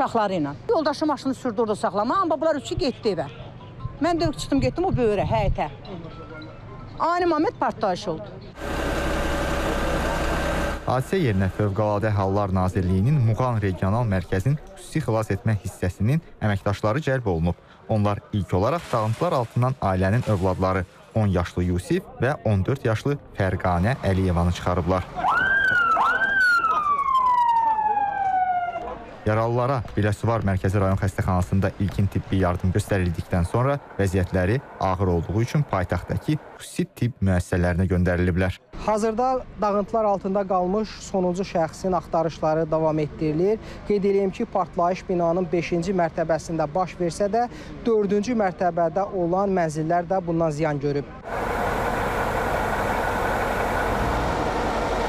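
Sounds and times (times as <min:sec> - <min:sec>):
crane engine running: 0:08.6 - 0:12.1, 0:51.2 - 0:55.0
emergency vehicle siren: 0:25.0 - 0:29.2, 0:51.3 - 0:55.0.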